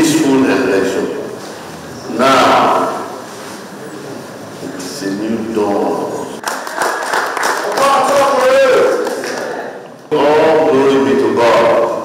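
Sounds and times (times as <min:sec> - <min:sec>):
large hall background noise: 0:00.0 - 0:12.0.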